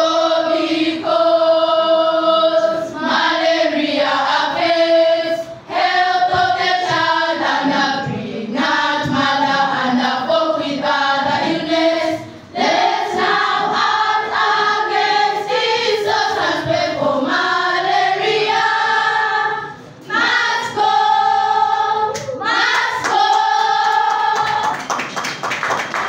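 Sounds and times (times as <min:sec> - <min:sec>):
children singing: 0:00.0 - 0:24.8
people clapping: 0:22.1 - 0:26.0.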